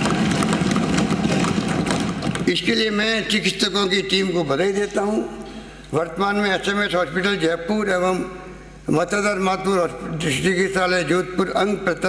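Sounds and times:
hands thumping desks in applause: 0:00.0 - 0:02.5.

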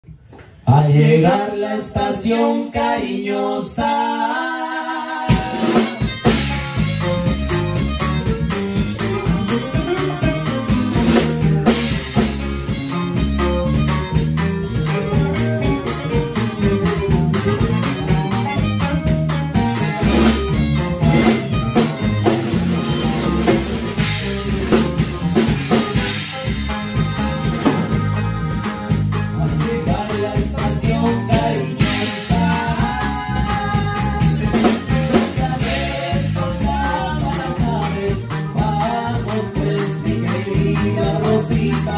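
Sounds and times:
bass: 0:00.0 - 0:41.9
accordion: 0:01.4 - 0:41.9
saxophone: 0:05.1 - 0:41.9
drum kit: 0:05.2 - 0:41.9
strummed guitar: 0:05.3 - 0:41.9.

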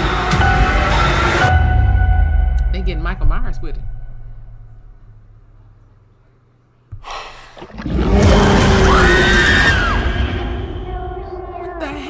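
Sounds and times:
dense music and noise: 0:00.0 - 0:05.9, 0:08.0 - 0:12.0
sudden hit: 0:01.5 - 0:06.1.

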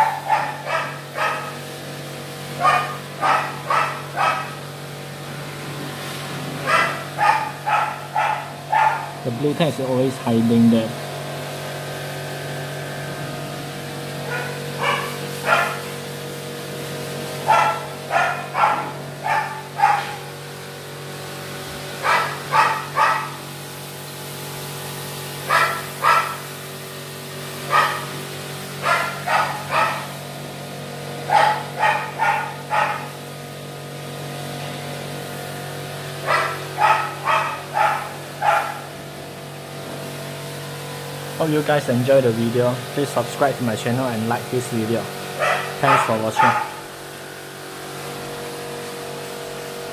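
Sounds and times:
dog barking: 0:00.0 - 0:01.7, 0:02.6 - 0:04.6, 0:06.6 - 0:09.2, 0:14.2 - 0:16.0, 0:17.4 - 0:20.3, 0:22.0 - 0:23.4, 0:25.4 - 0:26.5, 0:27.6 - 0:28.1, 0:28.8 - 0:30.2, 0:31.2 - 0:33.2, 0:36.2 - 0:38.9, 0:45.4 - 0:46.9.

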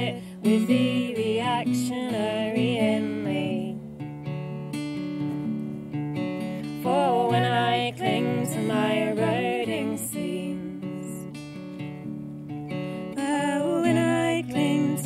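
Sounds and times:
women singing folk song: 0:00.0 - 0:04.0, 0:06.4 - 0:11.8, 0:12.7 - 0:15.0
acoustic guitar: 0:00.0 - 0:15.0.

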